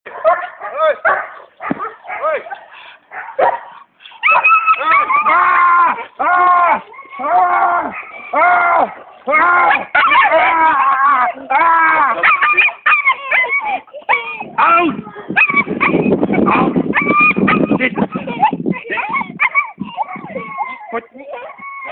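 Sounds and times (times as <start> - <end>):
dog barking: 0.1 - 5.3, 7.8 - 8.2, 8.9 - 10.4, 12.2 - 13.5, 15.4 - 17.8.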